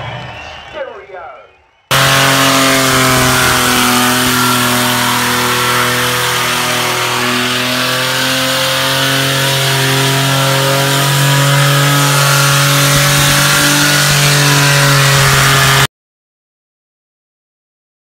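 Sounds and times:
car engine at high revs: 1.9 - 15.9
spinning tyres hissing: 1.9 - 15.9.

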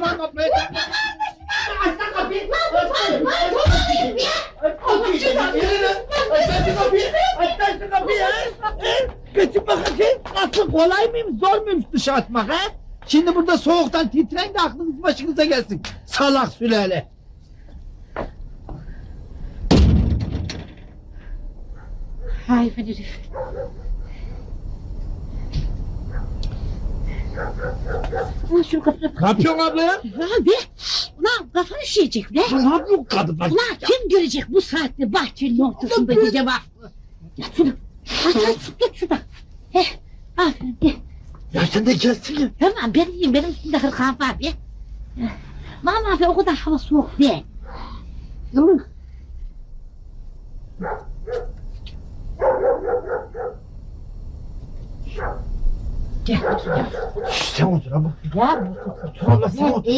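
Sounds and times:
dog barking: 23.3 - 23.9, 26.1 - 26.4, 27.3 - 28.4, 50.8 - 51.6, 52.4 - 53.6, 55.1 - 55.5, 56.3 - 57.4, 58.4 - 59.5
low steady rumble: 47.4 - 59.9.

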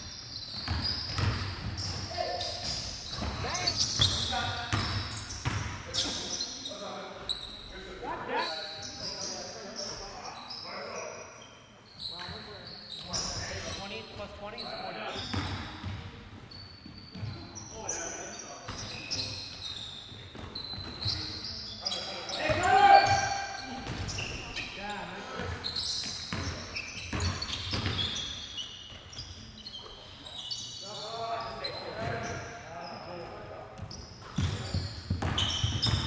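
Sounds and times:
sneakers squeaking: 0.0 - 36.0
basketball bouncing: 0.6 - 1.9, 2.6 - 5.7, 26.3 - 28.0, 33.8 - 36.0.

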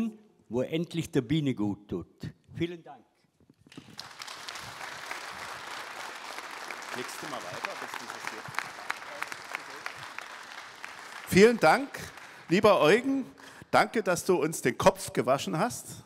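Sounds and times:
audience applauding: 3.7 - 13.6.

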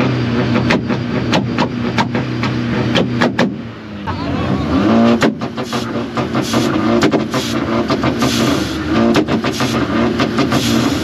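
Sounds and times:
exhaust bangs and pops: 0.0 - 3.6, 4.9 - 11.0
car engine revving: 0.0 - 11.0.

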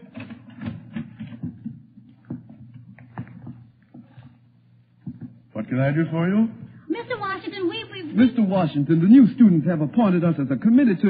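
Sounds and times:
footsteps of several people: 0.0 - 5.6
faint steady hum: 0.0 - 11.0.

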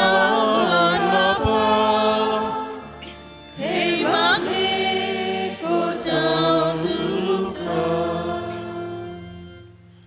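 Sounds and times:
church choir singing: 0.0 - 9.8.

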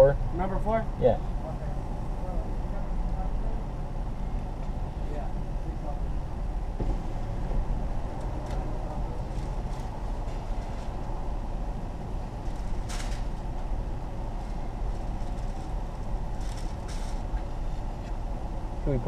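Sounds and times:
vehicle idling rumble: 0.0 - 19.0.

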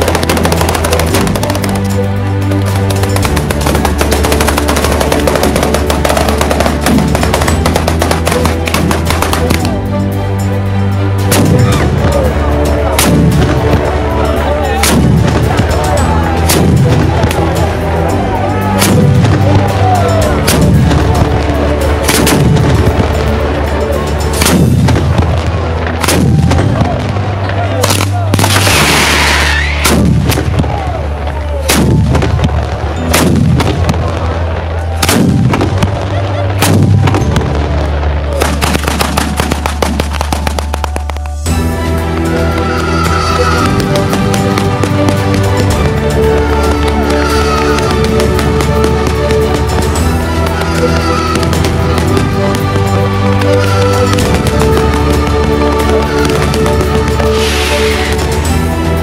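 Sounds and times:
firecrackers banging rapidly: 0.0 - 10.0, 11.0 - 59.0
loud hiss: 57.3 - 58.4.

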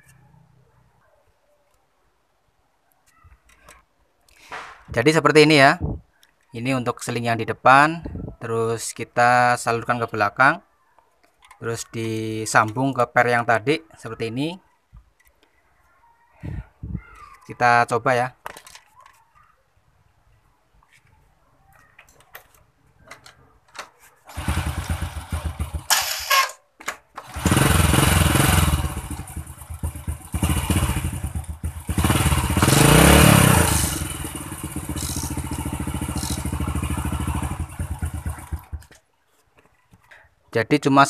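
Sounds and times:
motorcycle engine starting and idling: 24.2 - 39.1
motorcycle engine revving: 24.3 - 26.3, 27.2 - 38.9.

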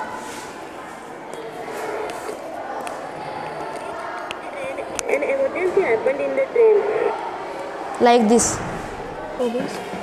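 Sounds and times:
recorded voice through small loudspeaker: 3.6 - 7.2.

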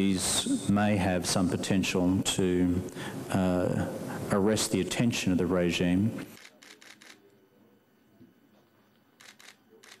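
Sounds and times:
camera shutter clicks: 9.2 - 10.0.

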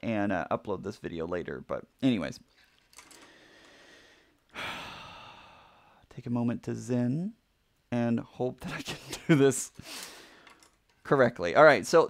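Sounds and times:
man sighing: 3.1 - 6.0.

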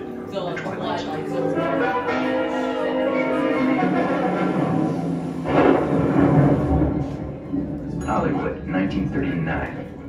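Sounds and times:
recorded thunder over speakers: 4.5 - 10.0.

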